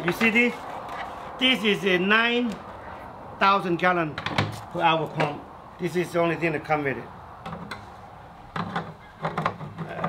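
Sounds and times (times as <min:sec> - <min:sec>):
plastic clicks and knocks: 0:08.5 - 0:10.0.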